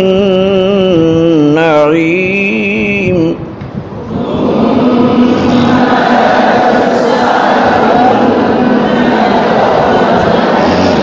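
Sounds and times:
men reciting in unison: 0.0 - 11.0.

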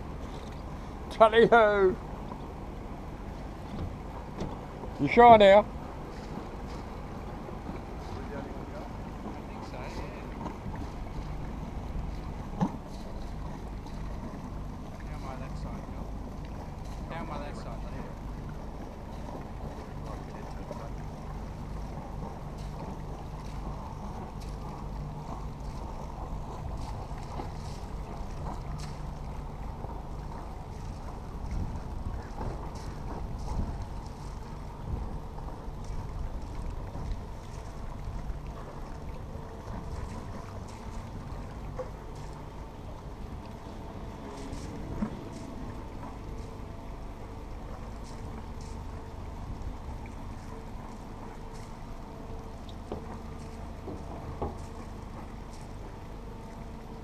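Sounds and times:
boat diesel engine running: 0.0 - 57.0.

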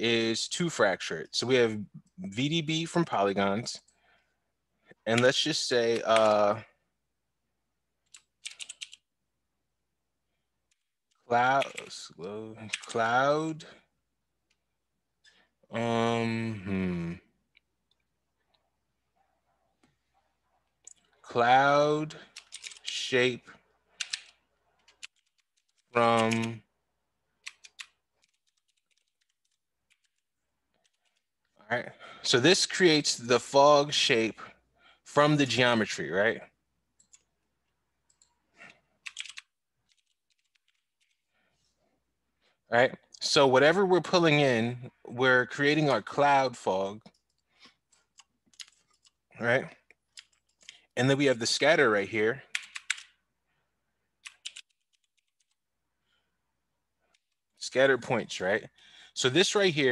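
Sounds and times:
faint computer keyboard typing: 8.0 - 9.1, 10.7 - 13.1, 22.1 - 23.0, 23.9 - 26.6, 27.4 - 31.3, 37.0 - 37.3, 38.0 - 41.2, 47.1 - 49.2, 49.9 - 50.9, 52.5 - 53.2, 54.2 - 55.6.

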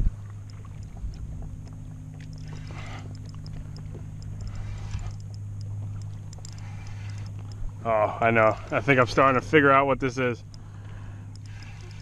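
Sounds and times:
steady low hum: 0.0 - 12.0
fishing reel ticking: 2.2 - 12.0.

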